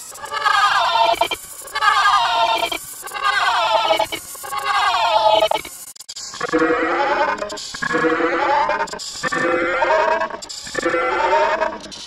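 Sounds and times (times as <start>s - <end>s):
warbling processed cartoon voice: 0.4s - 5.7s, 6.4s - 12.0s.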